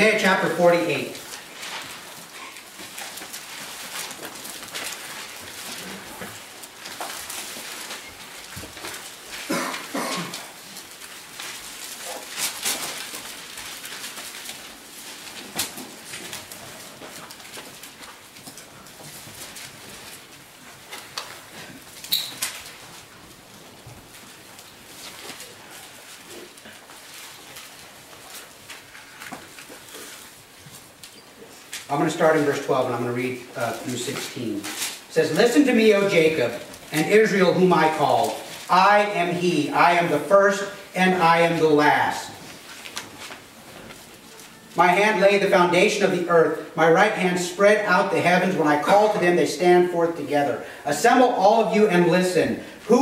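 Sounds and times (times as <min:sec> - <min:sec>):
pages being leafed through: 0:01.1 - 0:39.4, 0:42.3 - 0:44.8.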